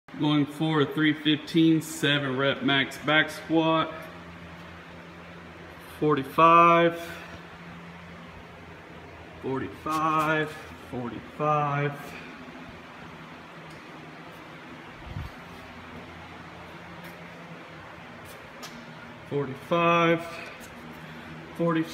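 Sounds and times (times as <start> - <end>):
room hum and hiss: 0.1 - 21.9.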